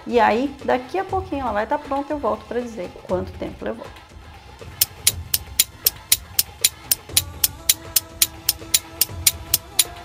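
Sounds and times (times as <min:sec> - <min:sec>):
sustained background music notes: 0:00.2 - 0:10.0
clock ticking: 0:04.8 - 0:10.0.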